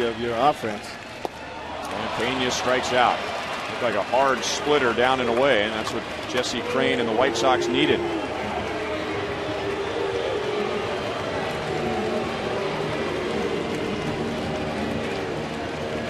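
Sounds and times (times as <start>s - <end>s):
stadium crowd murmur: 0.0s - 16.0s.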